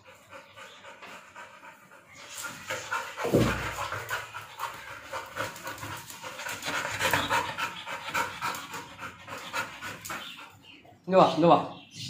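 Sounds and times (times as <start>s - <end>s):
dog panting rapidly: 0.0s - 10.9s.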